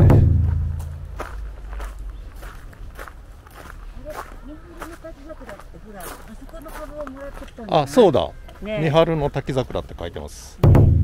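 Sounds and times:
loud low thump: 0.0s - 1.7s, 10.6s - 11.0s
footsteps on a path: 0.2s - 9.9s.

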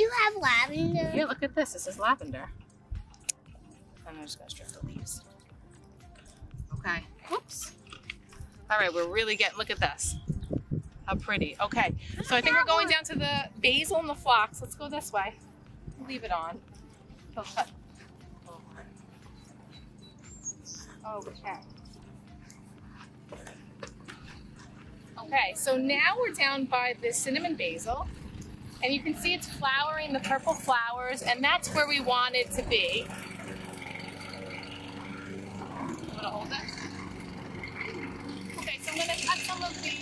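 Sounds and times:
small petrol engine running: 12.4s - 40.0s
high bird chirps: 19.3s - 22.0s.

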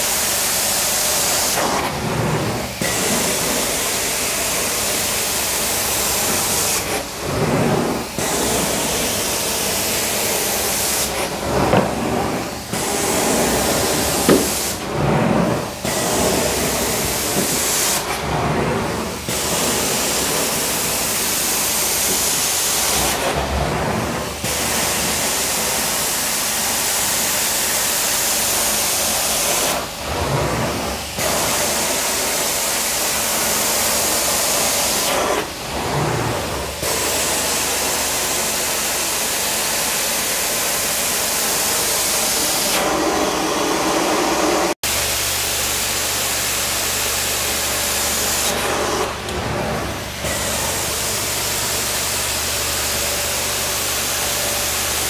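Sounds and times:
carpet cleaning wand suction: 0.0s - 44.7s, 46.0s - 55.0s.

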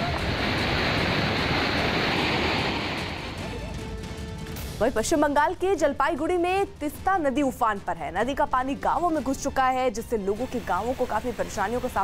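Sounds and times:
river rushing over rocks: 0.0s - 3.4s.

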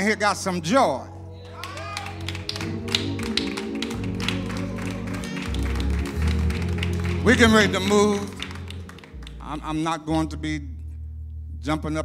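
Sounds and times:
low keyboard and bass notes: 0.0s - 12.0s.

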